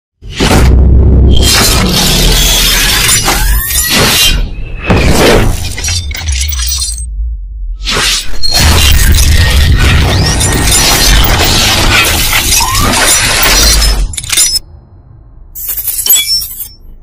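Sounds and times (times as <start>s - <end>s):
deep bass rumble: 7.0s - 7.9s
glass-shattering hits: 8.4s - 14.6s.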